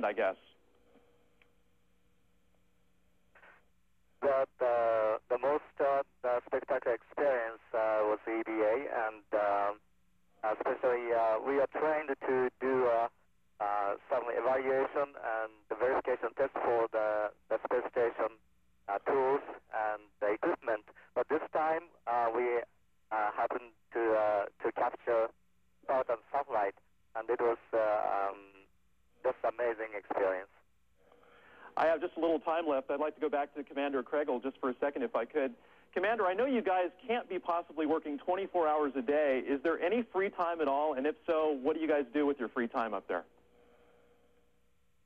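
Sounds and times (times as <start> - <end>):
man talking over radio: 0.0 - 0.5, 4.2 - 9.8, 10.4 - 25.3, 25.9 - 28.6, 29.2 - 30.6, 31.7 - 43.2
faint steady hum: 0.0 - 45.0.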